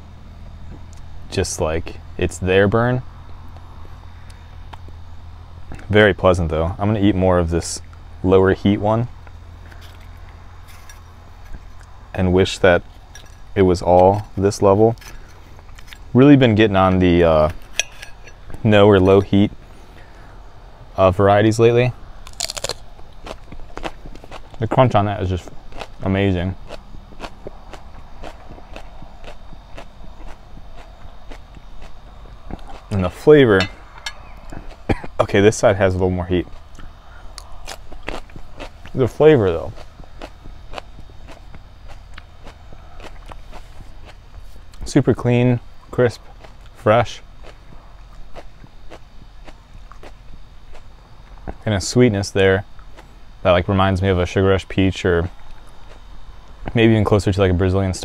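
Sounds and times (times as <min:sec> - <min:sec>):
steady low hum: 0:00.0 - 0:58.0
crunchy pepper being chewed: 0:09.2 - 0:12.1, 0:12.8 - 0:16.2, 0:22.1 - 0:44.9, 0:45.6 - 0:51.6, 0:52.7 - 0:53.2, 0:55.3 - 0:56.7.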